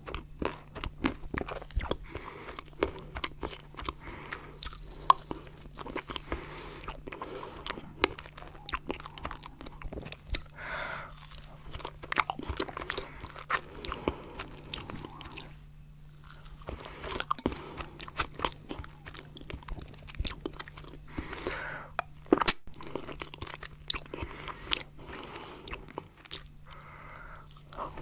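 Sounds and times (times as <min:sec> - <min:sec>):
chocolate flakes crunching: 0:00.0 - 0:28.0.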